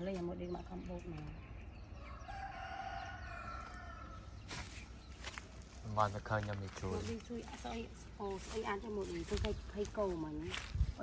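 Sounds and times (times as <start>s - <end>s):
rooster crowing: 2.0s - 4.3s.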